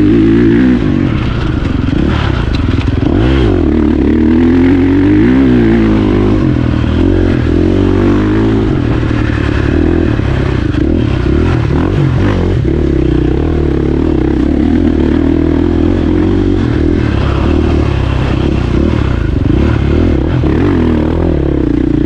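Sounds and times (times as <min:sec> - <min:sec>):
dirt bike engine running: 0:00.0 - 0:22.0.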